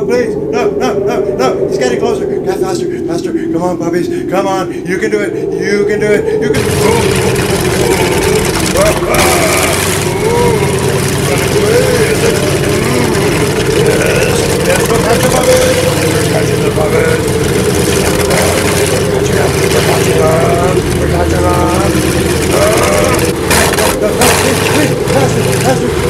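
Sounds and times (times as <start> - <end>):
voices: 0.0 - 26.0
snowcoach engine running: 6.6 - 26.0.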